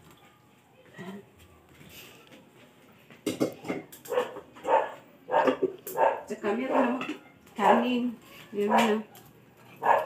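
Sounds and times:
dog barking: 0:04.1 - 0:07.0, 0:08.7 - 0:10.0.

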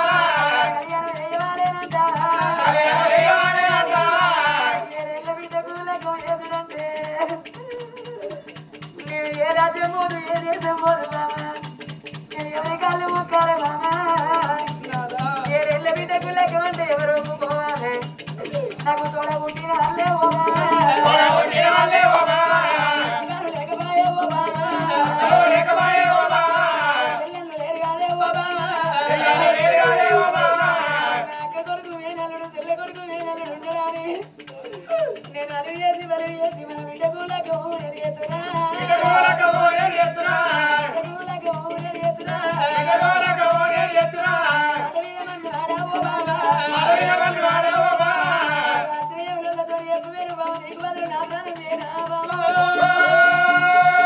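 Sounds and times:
amplified folk ballad singing: 0:00.0 - 0:05.2, 0:19.5 - 0:32.0, 0:38.3 - 0:49.2, 0:52.2 - 0:54.0
fast rattle-like percussion: 0:00.0 - 0:54.0.

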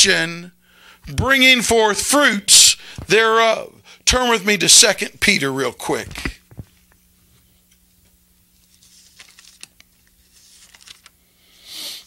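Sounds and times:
thin pages being turned: 0:08.6 - 0:11.2.

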